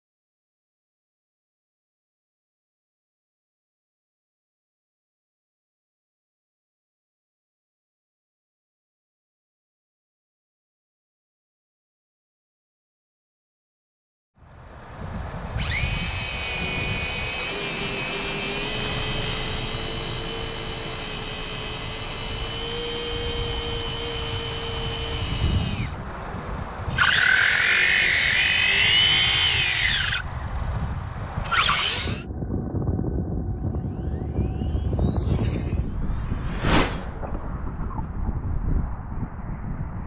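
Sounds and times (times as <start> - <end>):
high-pitched electric motor whine: 14.4 - 36.7.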